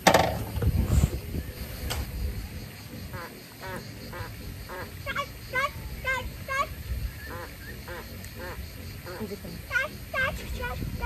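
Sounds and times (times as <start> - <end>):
ducks quacking: 2.9 - 11.0.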